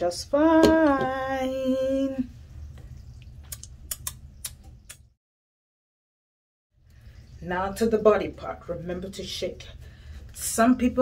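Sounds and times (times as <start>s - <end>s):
low room hum: 0.0s - 5.2s, 6.8s - 11.0s
sharp clicks: 3.5s - 5.1s.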